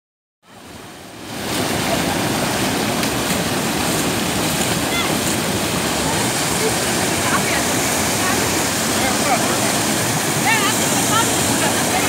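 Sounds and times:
floodwater pouring over dam: 0.6s - 12.0s.

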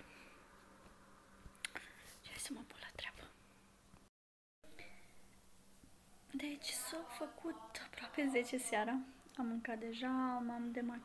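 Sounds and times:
woman whispering: 1.7s - 3.4s, 6.3s - 9.5s.

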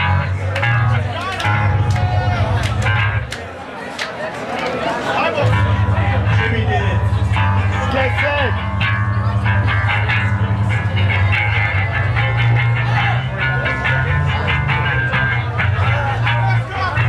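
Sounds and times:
distorted guitars and bass: 0.0s - 3.4s, 5.4s - 17.0s
voices over band: 0.0s - 17.0s.

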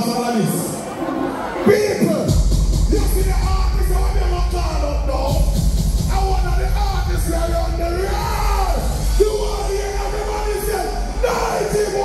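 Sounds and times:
loud music with heavy bass: 0.8s - 12.0s
man singing and yelling into microphone: 2.9s - 12.0s.

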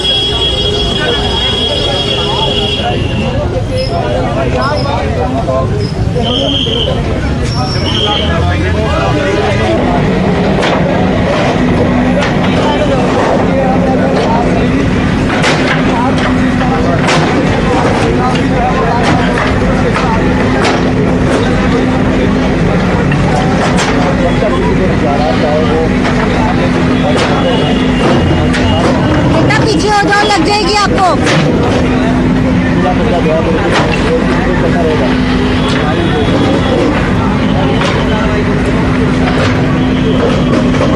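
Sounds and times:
crowd voices: 0.0s - 40.9s
excavator engine running: 0.0s - 40.9s.

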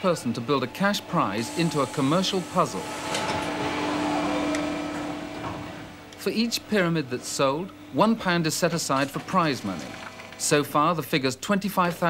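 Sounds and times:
injection moulding machine hum: 0.0s - 11.3s.

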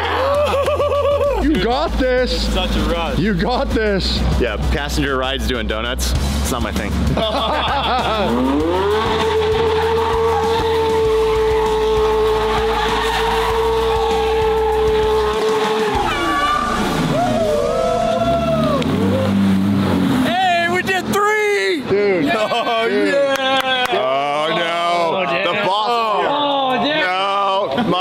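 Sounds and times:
car engine revving: 3.9s - 21.3s
tyres squealing: 8.6s - 19.4s.

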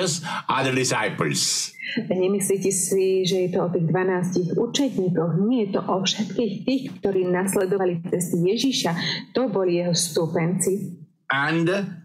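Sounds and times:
woman talking: 1.8s - 11.0s.

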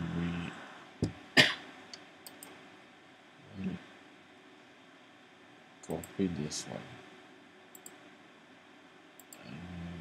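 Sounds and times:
low vocal hum: 0.0s - 0.8s, 9.4s - 10.0s
faint clicks: 1.9s - 2.6s, 7.7s - 8.0s, 9.2s - 9.5s.

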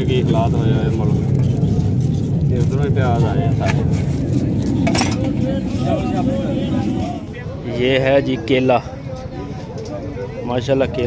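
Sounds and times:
faint voices talking: 0.0s - 11.0s
low rumble of motor traffic: 0.0s - 11.0s.

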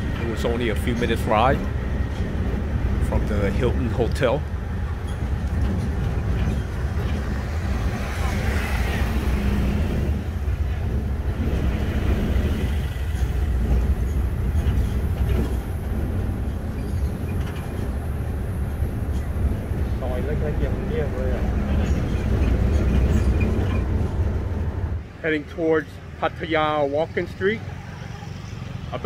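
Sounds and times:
road noise: 0.0s - 29.0s
truck engine rumble: 0.0s - 29.0s.

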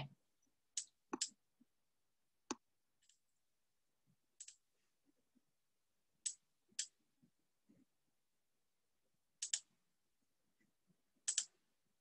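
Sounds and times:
computer mouse clicks: 0.8s - 1.4s, 4.4s - 4.6s, 9.4s - 9.7s, 11.2s - 11.6s.

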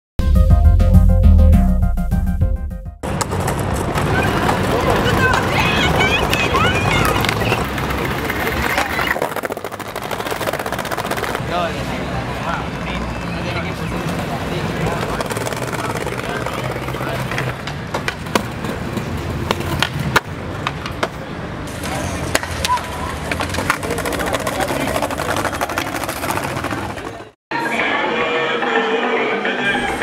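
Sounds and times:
skateboard clacking: 3.0s - 11.4s, 13.9s - 27.3s
skateboard wheels rolling on concrete: 3.0s - 28.0s.

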